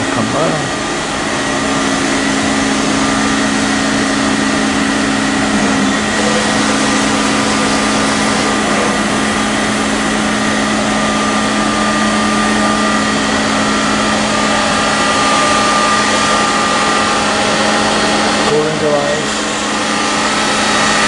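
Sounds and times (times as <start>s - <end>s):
machinery humming: 0.0s - 21.0s.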